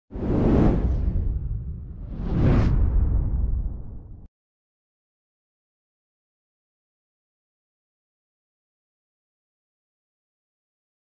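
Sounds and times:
cinematic whoosh: 0.1s - 4.3s
deep rumble: 0.2s - 4.3s.

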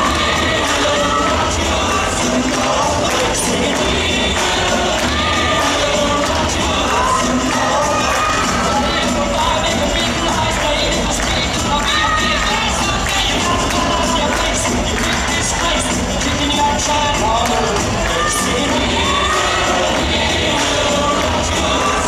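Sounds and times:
crowd cheering and shouting: 0.0s - 22.0s
rock and roll dance music: 0.0s - 22.0s.

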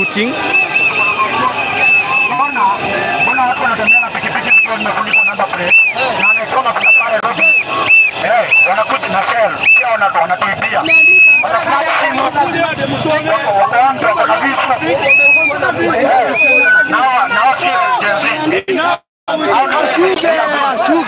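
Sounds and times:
whistle toots: 0.0s - 9.0s, 9.6s - 10.0s, 10.8s - 11.5s, 15.0s - 17.1s
crowd shouting and chanting: 0.0s - 21.0s.

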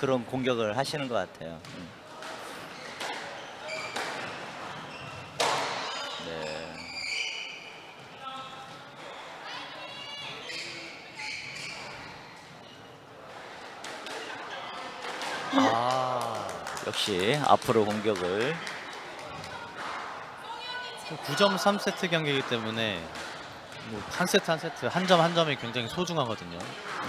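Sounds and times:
squash ball striking rackets and walls: 1.6s - 4.7s, 5.4s - 6.0s, 22.2s - 23.9s
shoes squeaking on hardwood floor: 1.7s - 8.2s.

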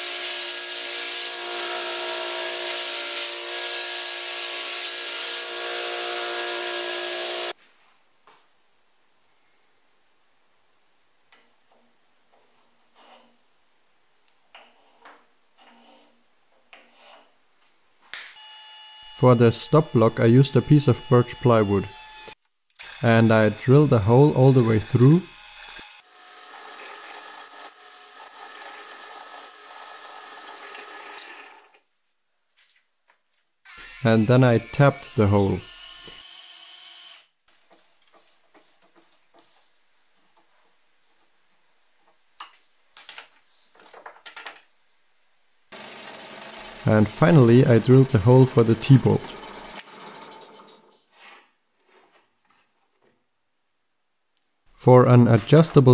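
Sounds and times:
drill press motor humming: 45.8s - 50.9s.

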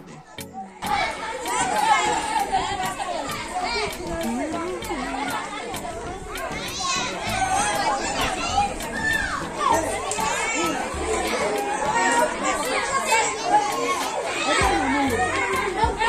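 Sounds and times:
children talking and calling out: 0.0s - 16.0s.

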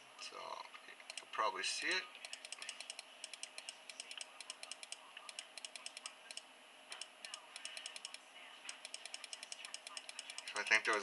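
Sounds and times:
mouse scroll wheel clicks: 1.0s - 1.3s, 2.2s - 11.0s.

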